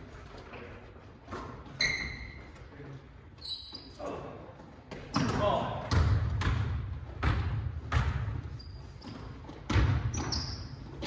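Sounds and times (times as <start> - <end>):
sneaker squeak: 1.3 - 4.2, 8.0 - 11.0.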